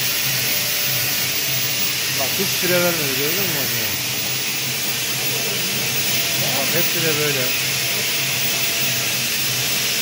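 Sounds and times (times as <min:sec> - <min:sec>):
machine hissing: 0:00.0 - 0:10.0.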